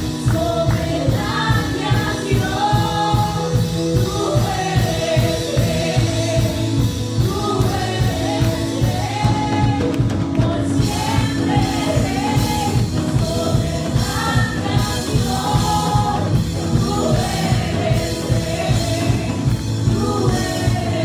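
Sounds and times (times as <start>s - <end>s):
instrumental accompaniment with beat: 0.0s - 21.0s
singers singing together: 0.0s - 21.0s.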